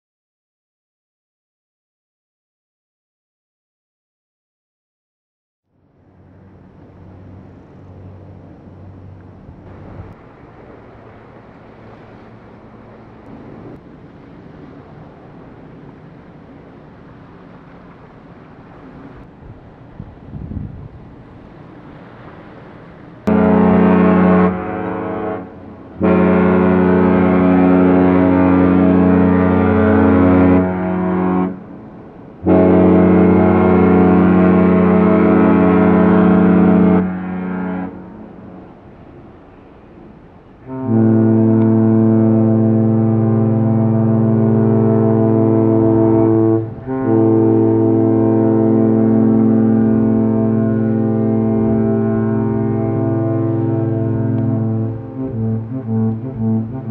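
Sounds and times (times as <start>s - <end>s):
deep ship horn blasts: 5.7s - 56.9s
ship horn of different pitch: 23.2s - 56.9s.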